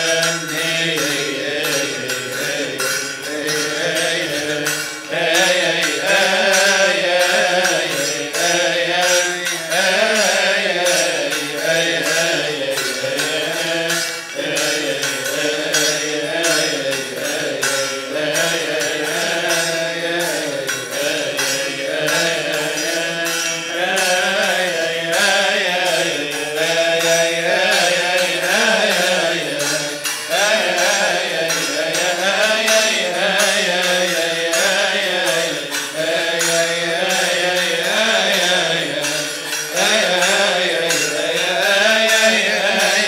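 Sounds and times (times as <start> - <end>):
hand cymbals beating: 0.0 - 43.0
men chanting a hymn: 0.0 - 43.0.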